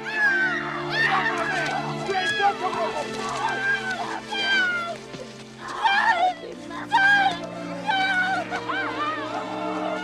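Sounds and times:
film score with low sustained notes: 0.0 - 10.0
woman crying in distress: 3.4 - 10.0.

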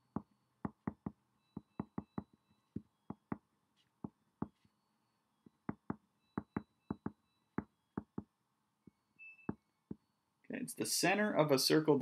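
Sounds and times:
pen tapping on paper: 0.1 - 3.4, 5.6 - 8.3.

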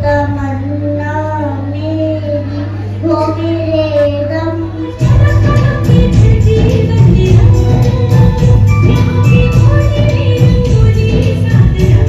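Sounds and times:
girl singing into a microphone: 0.0 - 12.0.

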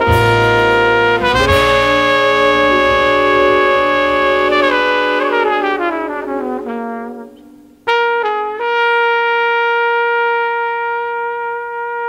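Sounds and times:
horn playing a long note: 0.0 - 12.0
jazz ballad: 0.0 - 12.0.

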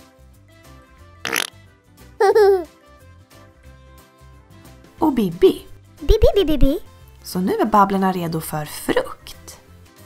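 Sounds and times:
cheerful children's music: 0.0 - 10.0
cartoon giggle sound effect: 1.3 - 1.5, 2.2 - 2.7.

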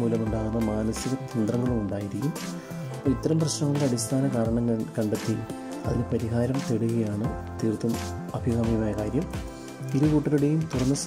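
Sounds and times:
background music: 0.0 - 11.0
person talking: 0.0 - 11.0.

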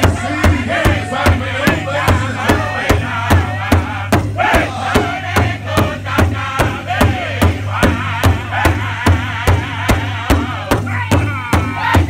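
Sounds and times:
group singing in high voices: 0.0 - 12.0
large hide drum beating: 0.0 - 12.0.

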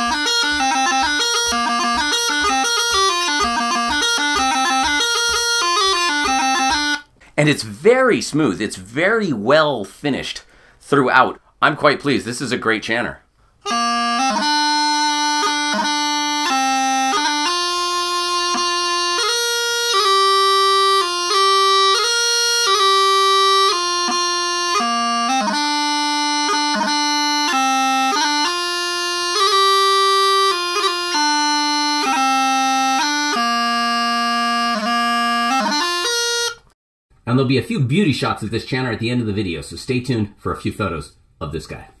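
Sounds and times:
practice chanter playing pipe tune: 0.0 - 7.1, 13.6 - 36.7.

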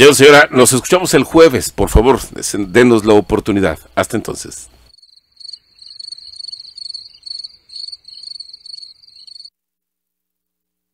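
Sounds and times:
cricket chirping: 4.9 - 9.5.

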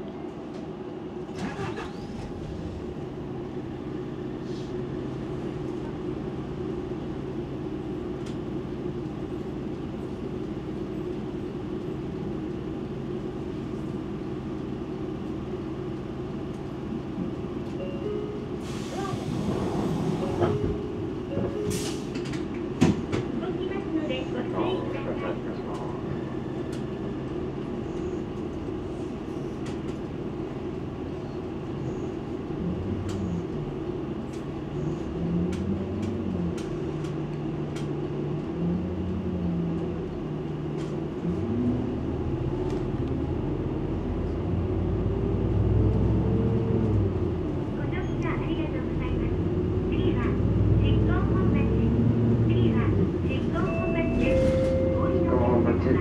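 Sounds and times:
low mechanical rumble: 0.0 - 56.0
people talking: 18.8 - 19.3, 23.3 - 26.0, 47.8 - 56.0.

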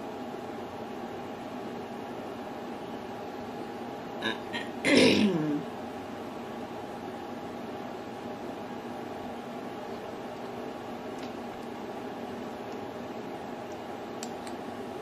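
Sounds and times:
room hum and hiss: 0.0 - 15.0
person making short vocal sound: 4.2 - 5.6.

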